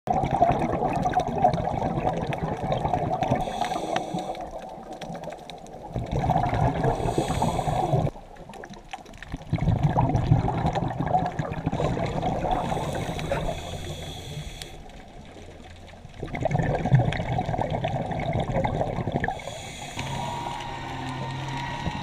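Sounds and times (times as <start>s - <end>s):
underwater bubbles gurgling: 0.1s - 22.0s.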